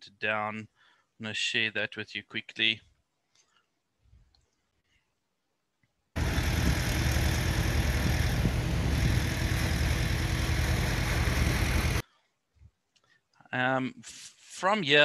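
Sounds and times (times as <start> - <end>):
loud even hiss: 6.2 - 12.0
vehicle engine running: 6.2 - 12.0.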